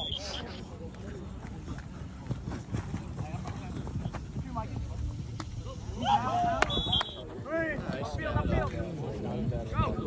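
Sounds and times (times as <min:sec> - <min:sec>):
footfalls on artificial turf: 0:01.4 - 0:05.5
wind rumble on microphone: 0:06.4 - 0:10.0.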